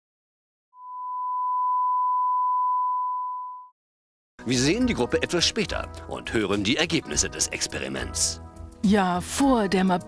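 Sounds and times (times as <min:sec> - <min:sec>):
steady sine test tone: 0:00.8 - 0:03.7.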